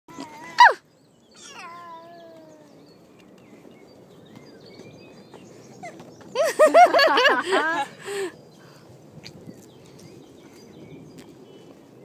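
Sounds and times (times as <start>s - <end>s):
baby squealing: 1.4s - 2.3s
baby vocal call: 1.4s - 2.8s.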